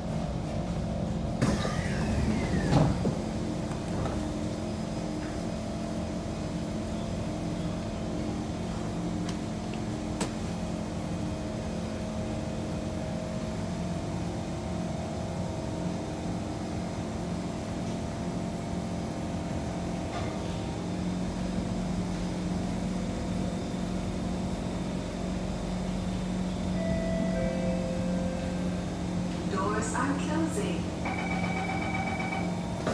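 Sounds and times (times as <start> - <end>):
train equipment humming: 0.0 - 32.9
higher steady tones: 26.8 - 32.6.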